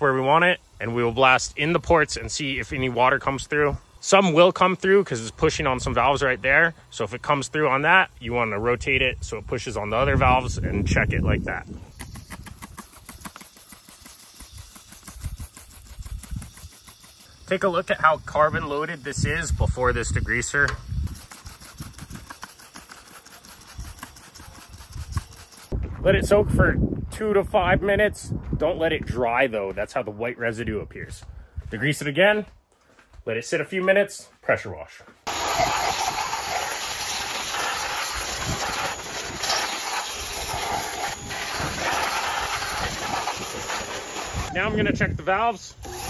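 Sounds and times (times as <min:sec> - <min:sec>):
pressure washer spraying water: 0:11.9 - 0:25.8, 0:35.3 - 0:44.6, 0:45.8 - 0:46.0.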